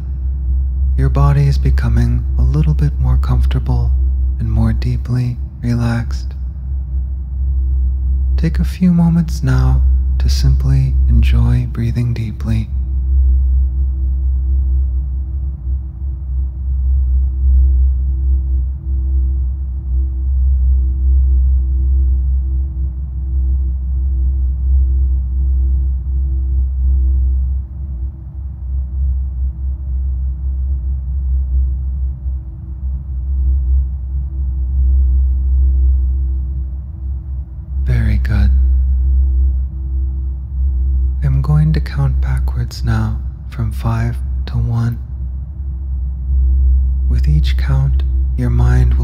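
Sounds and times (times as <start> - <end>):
deep wavering low rumble: 0.0 - 49.0
steady held tone: 0.0 - 49.0.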